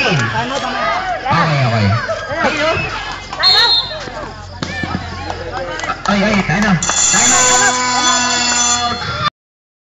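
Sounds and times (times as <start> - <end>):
crowd voices: 0.0 - 9.3
electronic buzzer tone: 6.8 - 9.3.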